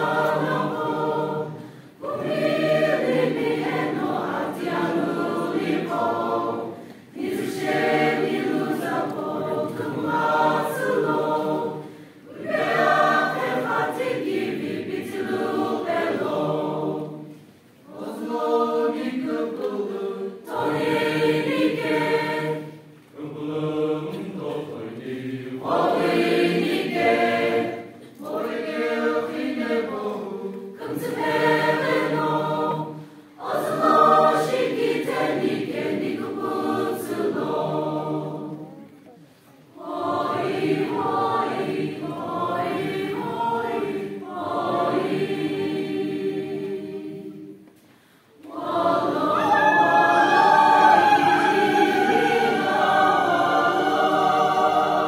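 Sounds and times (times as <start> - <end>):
mixed choir singing: 0.0 - 38.8, 39.6 - 55.0.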